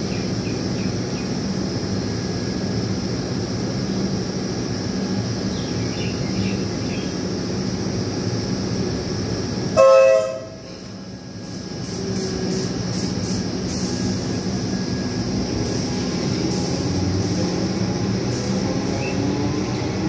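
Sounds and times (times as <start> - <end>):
train running noise: 0.0 - 20.0
train horn toot: 9.8 - 10.8
rising motor whine: 14.6 - 20.0.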